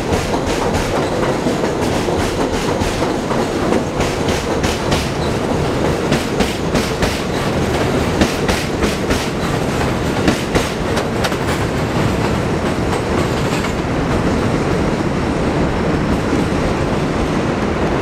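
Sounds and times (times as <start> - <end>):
wheels clacking over rail joints: 0.0 - 15.0
train wheels rumbling on rail: 0.0 - 18.0.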